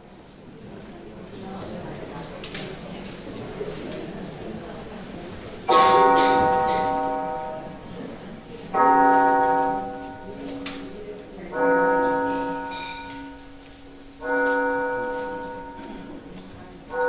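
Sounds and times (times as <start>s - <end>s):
low hall murmur: 0.0s - 17.0s
piano notes ringing: 5.7s - 17.0s.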